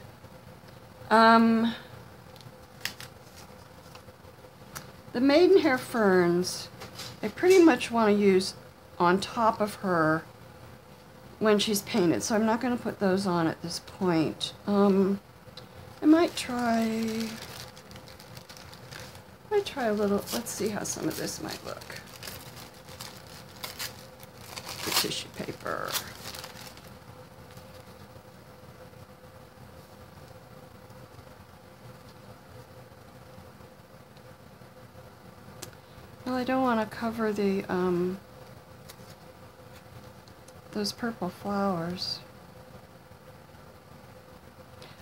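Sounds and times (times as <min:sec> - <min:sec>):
faint steady hum: 0:00.0 - 0:45.0
tissue paper rustling: 0:02.6 - 0:04.0, 0:16.0 - 0:28.1, 0:38.8 - 0:40.2.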